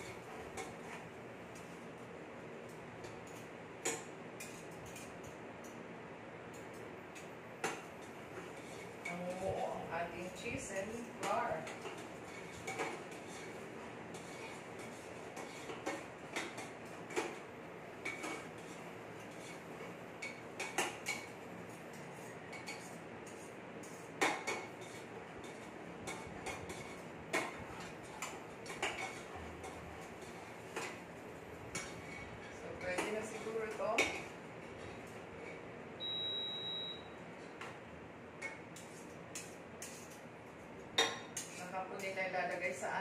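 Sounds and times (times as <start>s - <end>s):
short high beep: 36.0s - 37.1s.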